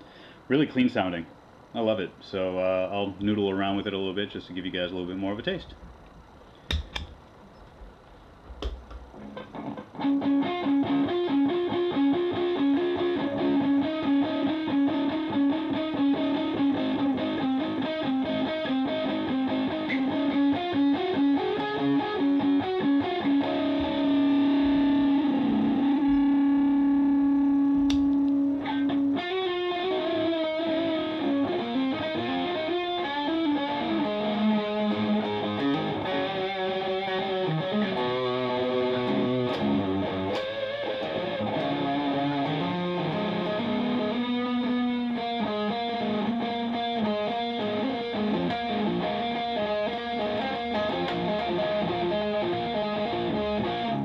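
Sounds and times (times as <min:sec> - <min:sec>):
distorted electric guitar with delay: 0:09.1 - 0:54.0.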